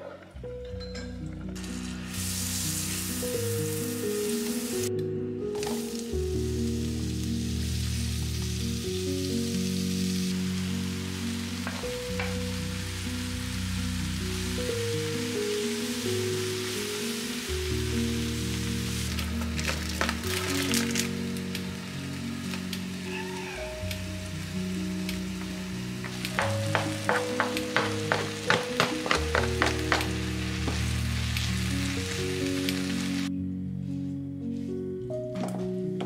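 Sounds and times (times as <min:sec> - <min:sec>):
slow background music: 0:00.0 - 0:36.0
vegetables sizzling in a frying pan: 0:01.6 - 0:04.9, 0:05.6 - 0:33.3.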